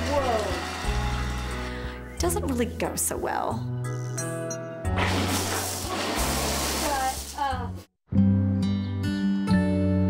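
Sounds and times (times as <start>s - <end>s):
water gushing in bathtub: 5.0s - 7.5s.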